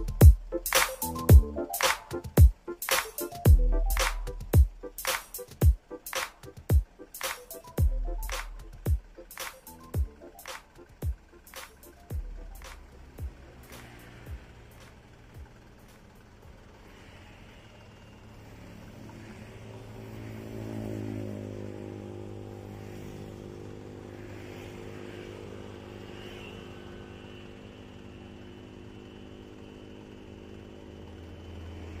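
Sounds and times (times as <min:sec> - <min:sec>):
engine drone: 0:00.0 - 0:32.0
motorcycles and cars passing: 0:08.7 - 0:32.0.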